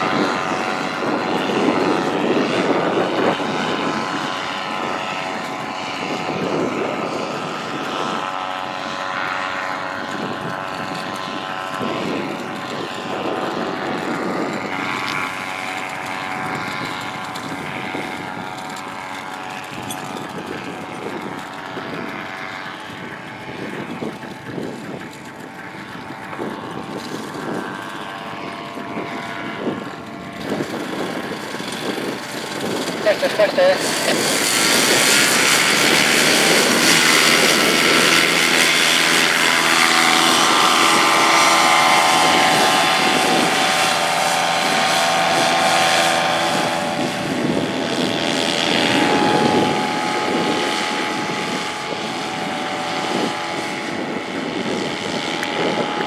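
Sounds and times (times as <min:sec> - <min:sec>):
paramotor engine droning: 0:00.0 - 0:56.0.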